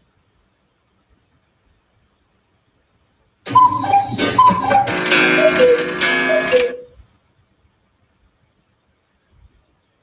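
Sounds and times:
cuckoo clock calls: 0:03.5 - 0:06.9.

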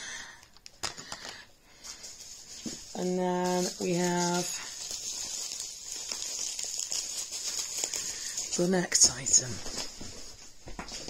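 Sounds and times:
packaging rustling: 0:00.2 - 0:11.0.

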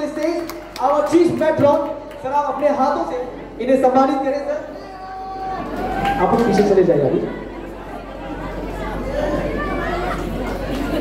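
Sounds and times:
indistinct chatter: 0:02.8 - 0:11.0.

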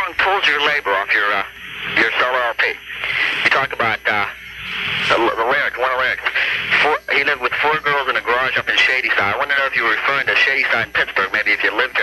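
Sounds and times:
man talking over telephone: 0:00.0 - 0:04.4, 0:05.1 - 0:12.0.

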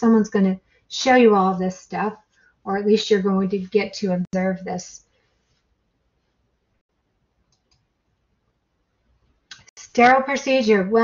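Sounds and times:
faint clicks: 0:07.5 - 0:07.9.

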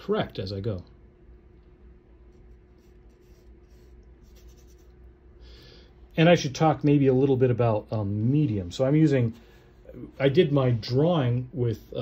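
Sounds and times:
faint steady hum: 0:00.0 - 0:12.0
paintbrush brushing on canvas: 0:02.2 - 0:05.1.

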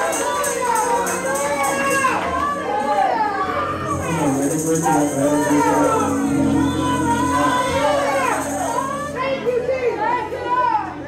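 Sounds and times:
congregation speaking aloud: 0:00.0 - 0:11.0.

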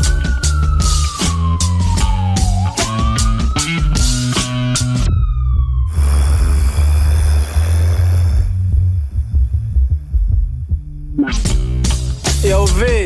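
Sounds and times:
falling siren-like wail: 0:00.0 - 0:05.9
deep bass beat: 0:00.0 - 0:13.0.

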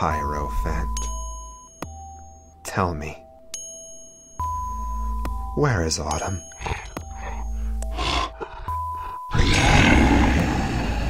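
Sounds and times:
eerie music with held tone: 0:00.0 - 0:11.0
loud rough growl: 0:07.9 - 0:11.0.

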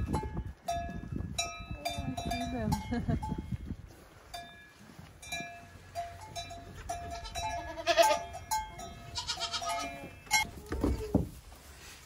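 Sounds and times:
goats bleating: 0:07.1 - 0:08.4, 0:09.1 - 0:10.2.

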